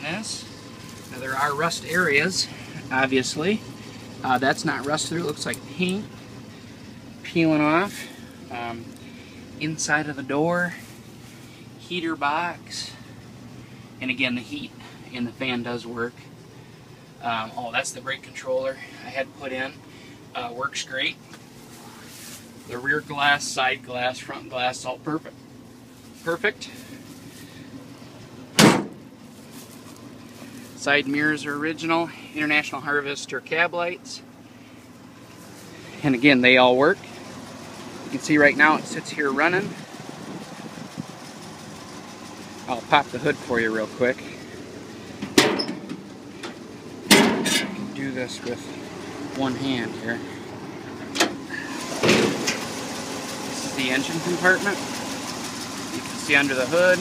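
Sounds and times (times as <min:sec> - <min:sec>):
truck engine idling: 0:00.0 - 0:57.0
truck door slamming: 0:28.5 - 0:29.1, 0:45.2 - 0:47.9, 0:51.0 - 0:52.6.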